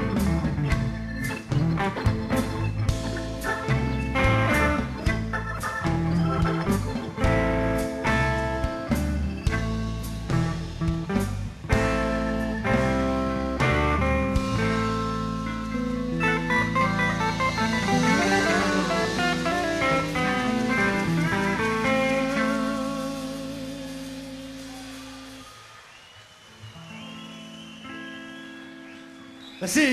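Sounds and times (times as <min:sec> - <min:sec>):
bass guitar: 0:00.0 - 0:25.4
drums: 0:00.0 - 0:29.9
fast electric guitar run: 0:16.4 - 0:25.4.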